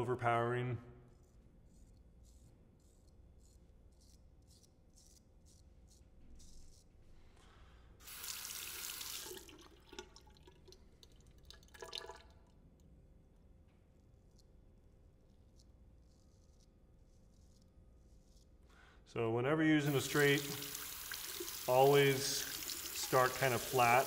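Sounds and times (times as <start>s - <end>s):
razor scraping stubble: 1.1s - 7.2s, 15.3s - 18.7s, 19.9s - 24.0s.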